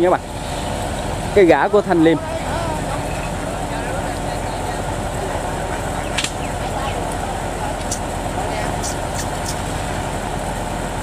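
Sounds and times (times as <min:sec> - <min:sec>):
boat engine idling: 0:00.0 - 0:11.0
ducks chattering: 0:00.2 - 0:09.6.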